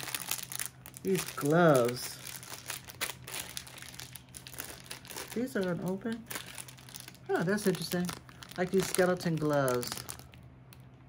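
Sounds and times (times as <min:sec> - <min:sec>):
crinkly packaging crackling: 0:00.0 - 0:11.0.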